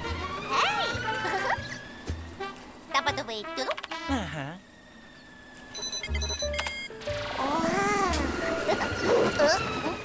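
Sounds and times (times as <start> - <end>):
electronic beeps and bleeps: 5.7 - 7.0
low bass background music: 6.0 - 9.4.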